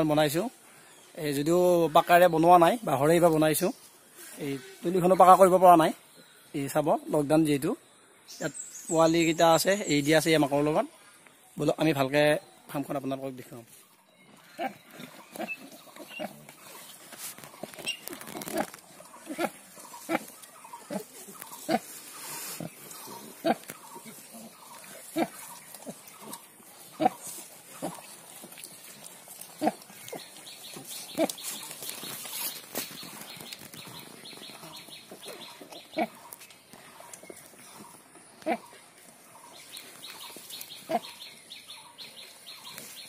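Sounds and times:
sow grunting: 0:14.4 - 0:16.9, 0:18.4 - 0:28.2.

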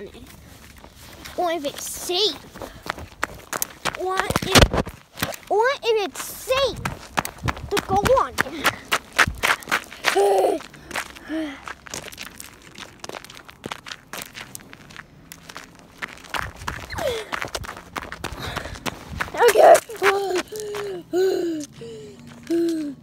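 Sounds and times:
footsteps crunching on gravel: 0:00.0 - 0:05.5, 0:06.1 - 0:21.0, 0:21.6 - 0:23.0.

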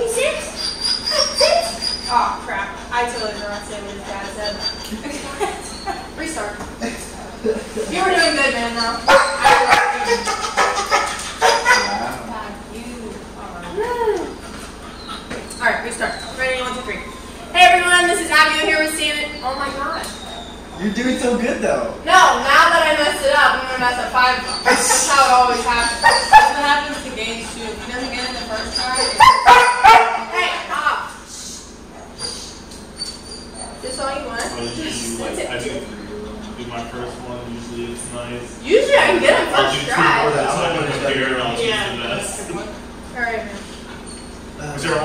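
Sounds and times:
puppy barking: 0:08.1 - 0:12.2, 0:23.6 - 0:31.0.

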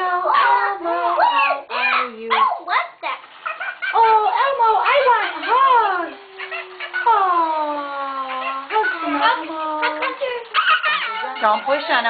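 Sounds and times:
person imitating dog yelps: 0:00.2 - 0:02.6.

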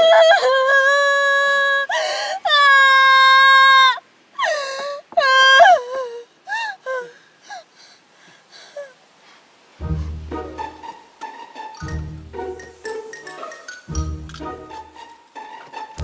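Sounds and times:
young woman wailing and sobbing: 0:00.0 - 0:07.2.

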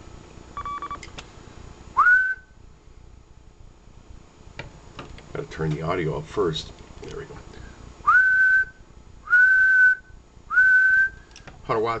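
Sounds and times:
rising whistle into microphone: 0:02.0 - 0:02.6, 0:08.1 - 0:11.2.

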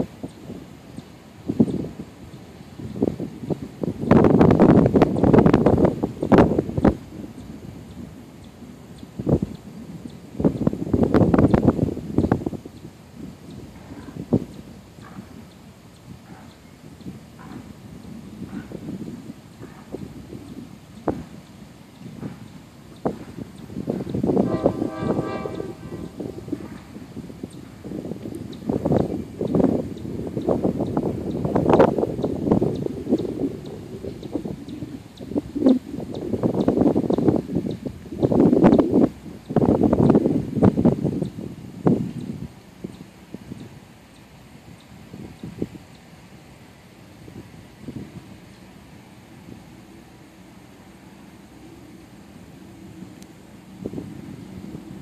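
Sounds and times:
train rolling and rumbling: 0:00.0 - 0:43.9, 0:46.6 - 0:55.0.

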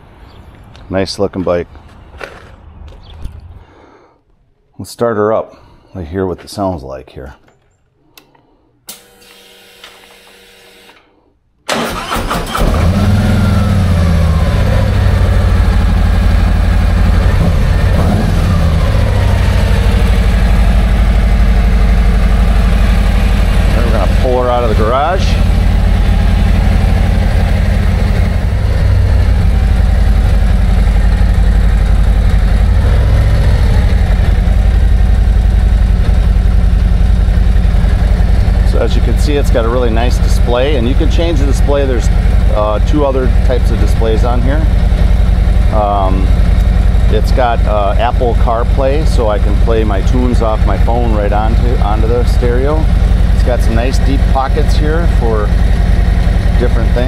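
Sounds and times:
starter motor cranking: 0:11.7 - 0:13.4
faint ignition hum: 0:11.7 - 0:57.0
motorcycle engine idling: 0:13.6 - 0:57.0.

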